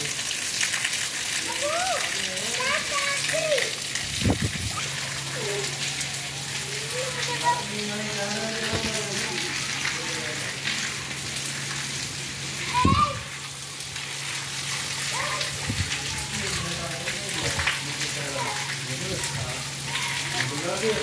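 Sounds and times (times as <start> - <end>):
rain on wet pavement: 0.0 - 21.0
children shouting: 1.4 - 3.8, 4.7 - 10.1, 12.5 - 16.7, 18.2 - 20.8.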